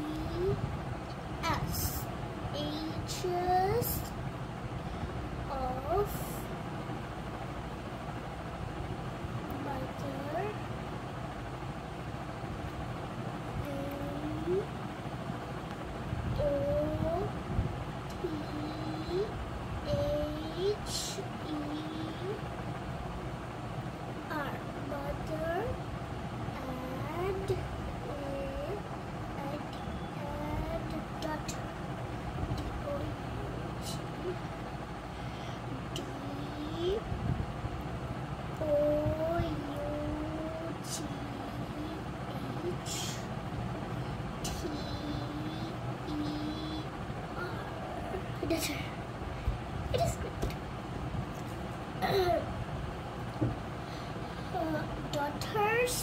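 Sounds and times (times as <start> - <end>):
distant voices: 0.0 - 56.0
low background rumble: 0.0 - 56.0.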